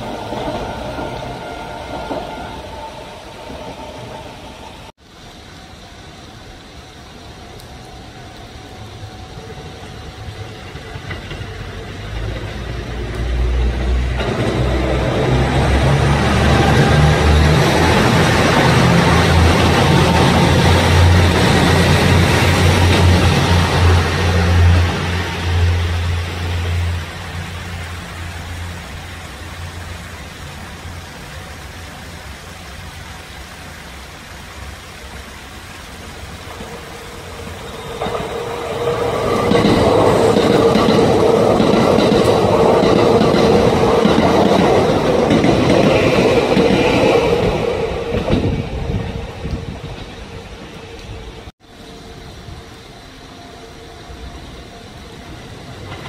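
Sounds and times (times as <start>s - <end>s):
train passing with low drone: 0.0s - 56.0s
train whine: 0.0s - 56.0s
wheels clacking over rail joints: 10.6s - 25.8s, 36.4s - 51.2s.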